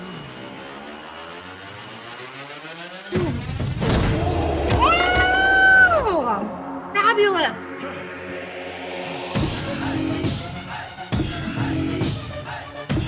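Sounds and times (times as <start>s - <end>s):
rising sweep: 0.0s - 3.1s, 4.1s - 11.2s
dramatic action film music: 0.0s - 13.0s
high rising tone: 4.3s - 11.1s.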